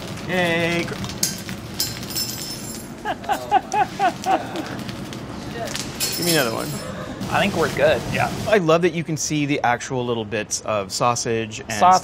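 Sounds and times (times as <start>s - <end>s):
food sizzling in a pan: 7.2s - 8.6s.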